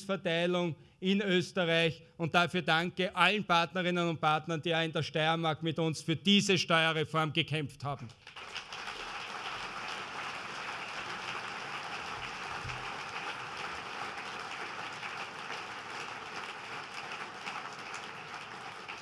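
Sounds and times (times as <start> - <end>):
large audience applauding: 8.2 - 19.0.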